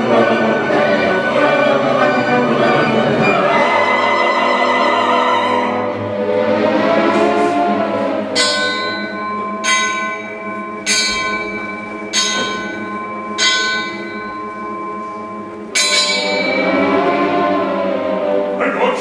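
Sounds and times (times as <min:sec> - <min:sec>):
orchestra sustained accompaniment: 0:00.0 - 0:19.0
bell tolling: 0:07.1 - 0:19.0.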